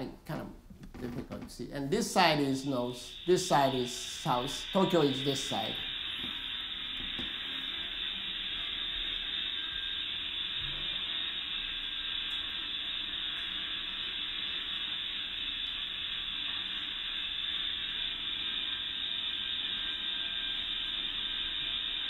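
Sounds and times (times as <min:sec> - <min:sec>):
faint hum: 0:00.0 - 0:22.0
steady hiss: 0:01.5 - 0:22.0.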